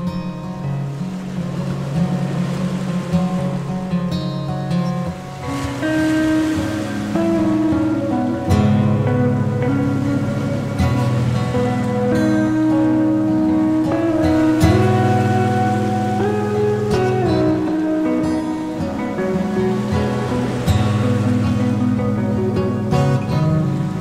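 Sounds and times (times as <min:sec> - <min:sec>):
instrumental music with held notes: 0:00.0 - 0:24.0.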